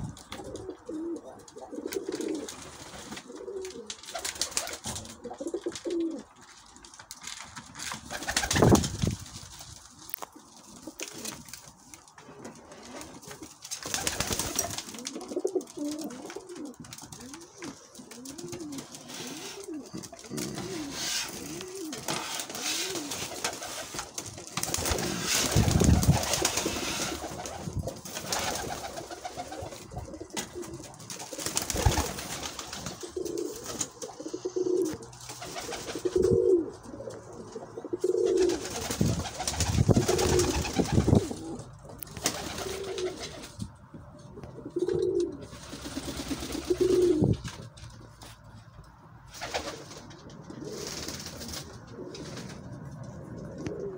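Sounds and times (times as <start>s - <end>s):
pigeons cooing: 0.0s - 6.4s, 12.1s - 47.9s, 49.3s - 53.9s.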